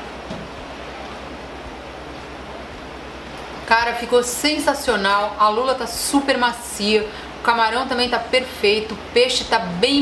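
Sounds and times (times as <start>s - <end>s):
low hum: 0.0s - 10.0s
steady background hiss: 0.0s - 10.0s.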